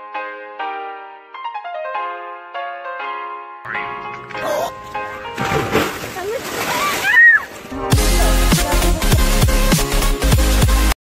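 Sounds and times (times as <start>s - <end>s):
large splash into creek water: 5.3s - 7.5s.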